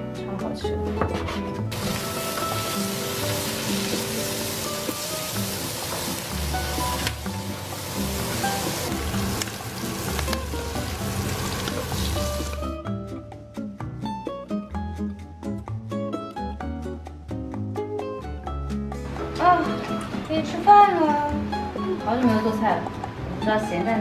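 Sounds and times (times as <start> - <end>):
light background music: 0.0 - 24.0
stir-fry sizzling in a wok: 1.7 - 12.8.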